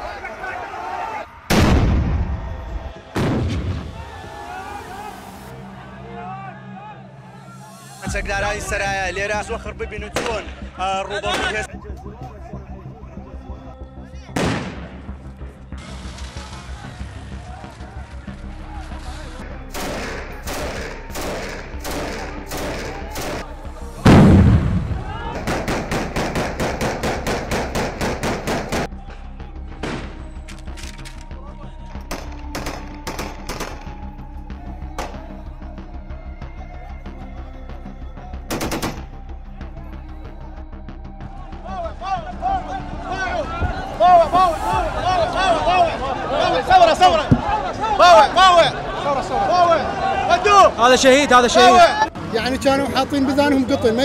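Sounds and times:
crowd shouting: 0:00.0 - 0:08.2, 0:16.3 - 0:30.4, 0:41.2 - 0:54.0
loud echoing bangs: 0:01.4 - 0:04.3, 0:19.6 - 0:29.0.

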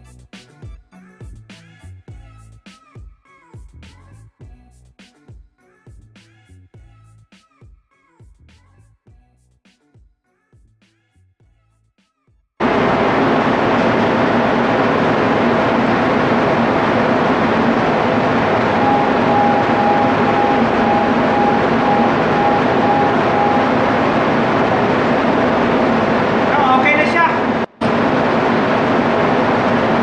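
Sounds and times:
diesel generator running: 0:12.6 - 0:30.0.

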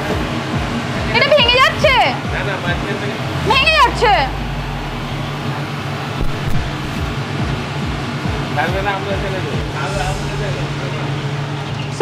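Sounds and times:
low mechanical hum: 0:03.0 - 0:08.4
hiss: 0:09.5 - 0:11.6.

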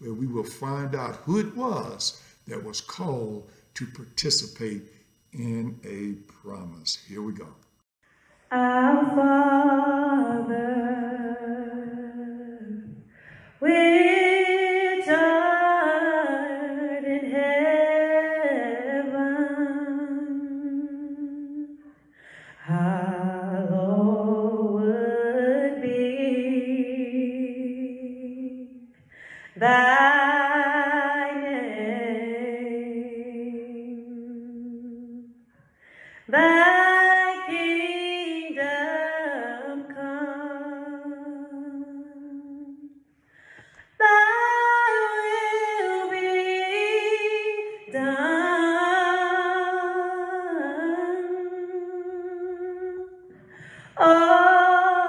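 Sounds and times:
woman singing a long note: 0:08.5 - 0:21.8, 0:22.5 - 0:28.9, 0:29.5 - 0:35.4, 0:36.2 - 0:42.9, 0:44.0 - 0:55.0
woman taking a breath: 0:29.1 - 0:29.6, 0:35.7 - 0:36.2, 0:43.2 - 0:44.0, 0:53.4 - 0:54.0.

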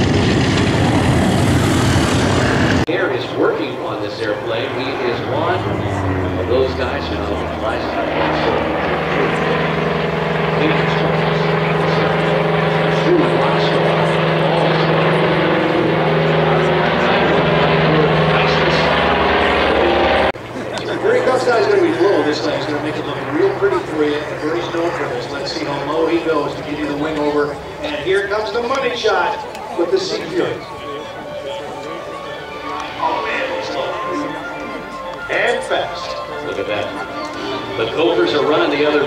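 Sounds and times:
propeller plane engine droning: 0:00.0 - 0:39.0
people talking: 0:02.9 - 0:39.0.

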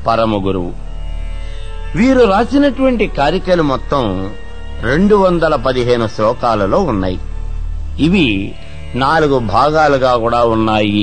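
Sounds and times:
faint background music: 0:00.0 - 0:11.0
steady low hum: 0:00.0 - 0:11.0
man speaking: 0:02.0 - 0:07.2, 0:08.0 - 0:11.0.

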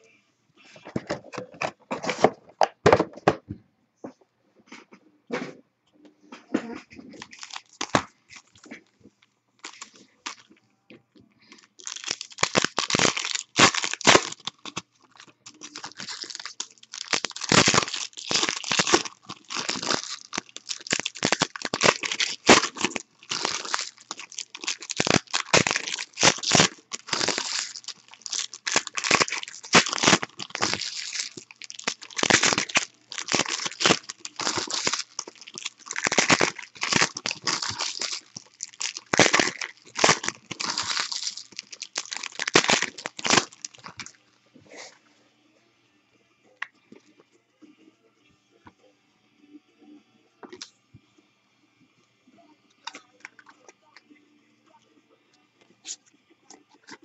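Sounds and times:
foil wrappers crinkling and tearing: 0:07.1 - 0:08.7, 0:09.6 - 0:10.5, 0:11.4 - 0:44.2.

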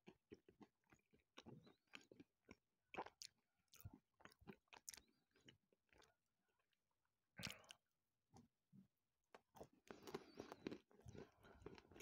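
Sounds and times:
chewing chocolate with nuts: 0:00.0 - 0:12.0.

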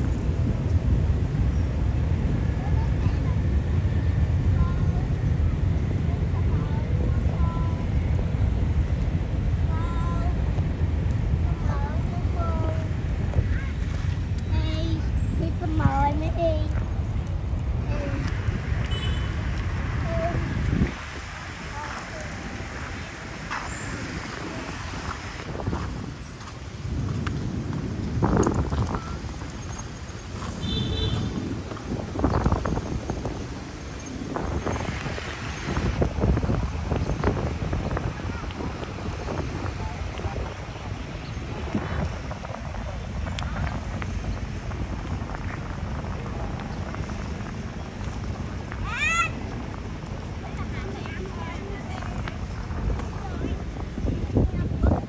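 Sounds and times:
road traffic rumble: 0:00.0 - 0:55.0.

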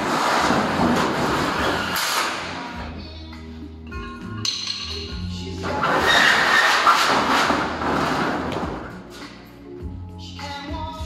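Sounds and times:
metal duct scraping on concrete: 0:00.0 - 0:02.9, 0:05.6 - 0:09.4
background music: 0:00.4 - 0:11.0.

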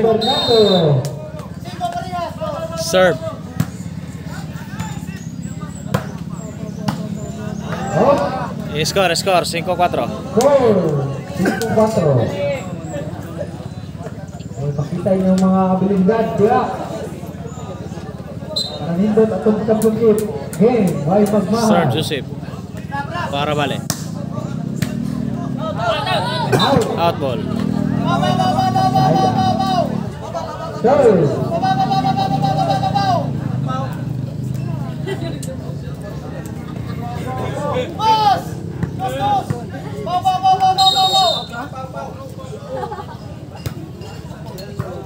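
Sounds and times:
crowd chatter: 0:00.0 - 0:45.0
ball kicked sharp smacks: 0:05.9 - 0:06.2, 0:23.8 - 0:24.2, 0:24.8 - 0:25.0.

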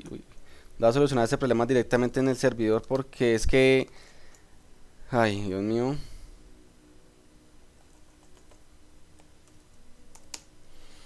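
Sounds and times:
computer keyboard keystrokes: 0:07.9 - 0:08.6, 0:09.2 - 0:10.5.

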